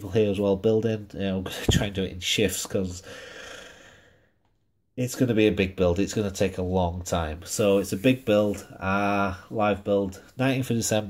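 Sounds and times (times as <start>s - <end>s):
man speaking: 0.0s - 3.1s, 5.0s - 11.0s
man's long soft breath: 3.0s - 4.4s.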